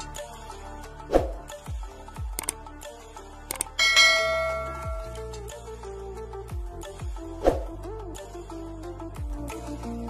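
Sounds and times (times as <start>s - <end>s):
background music with beat: 0.0s - 10.0s
quick double click: 3.5s - 3.8s
bright bell ding: 3.8s - 5.4s.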